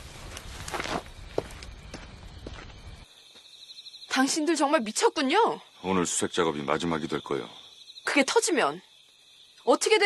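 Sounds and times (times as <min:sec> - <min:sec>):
footsteps: 0:00.0 - 0:03.5.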